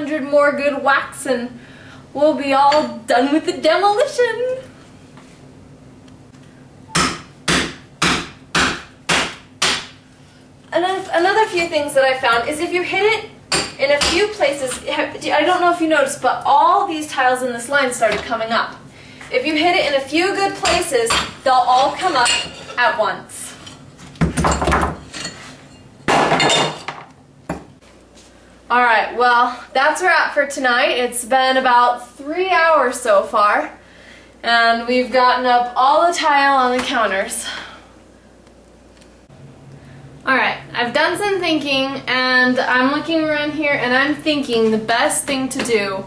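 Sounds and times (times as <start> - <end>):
sledgehammer striking chisel: 6.9 - 9.9.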